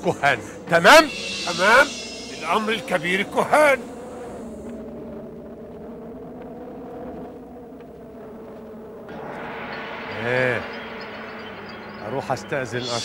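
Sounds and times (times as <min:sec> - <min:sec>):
low drone of sustained tones: 0:00.0 - 0:13.0
faint rumble: 0:00.8 - 0:13.0
hiss: 0:00.9 - 0:04.6, 0:12.8 - 0:13.0.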